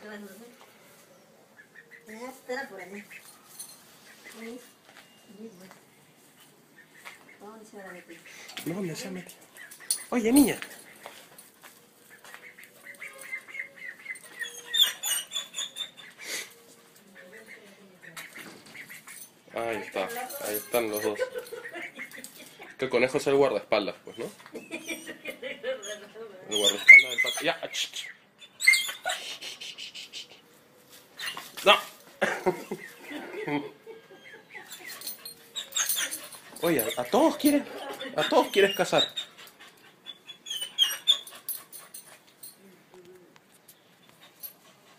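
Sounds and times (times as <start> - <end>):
duckling peeping: 1.6 - 2.4, 12.1 - 16.6, 17.2 - 19.2
dog whimpering: 13.1 - 16.2, 24.0 - 25.2, 25.8 - 27.6, 28.5 - 29.5, 33.0 - 43.3.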